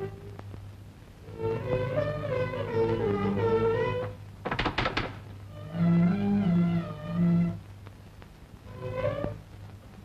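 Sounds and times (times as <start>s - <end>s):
bowed strings sliding notes: 1.3s - 4.2s.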